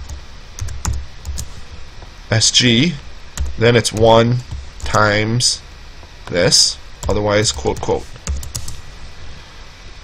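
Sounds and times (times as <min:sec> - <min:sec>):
computer keyboard keystrokes: 0:00.0 - 0:01.5, 0:03.4 - 0:05.0, 0:07.0 - 0:08.8.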